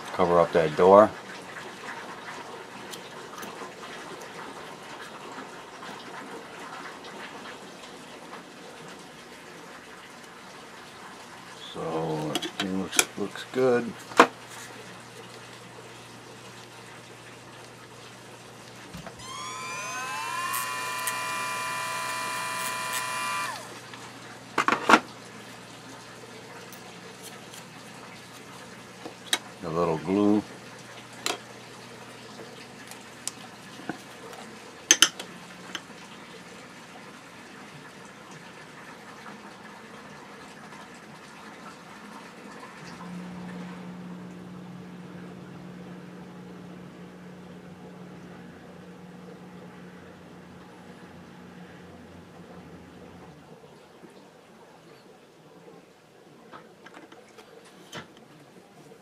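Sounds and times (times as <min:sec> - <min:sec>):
rotary tool whining: 0:19.0 - 0:23.9.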